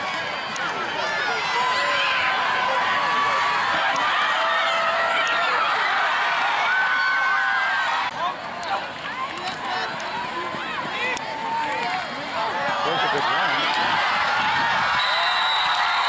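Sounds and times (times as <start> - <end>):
crowd cheering and yelling: 0.0 - 16.0.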